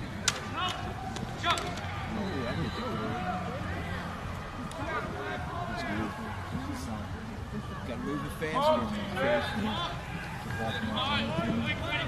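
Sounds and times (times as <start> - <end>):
voices of players and spectators: 0.0 - 12.0
lacrosse sticks clacking: 0.2 - 1.9.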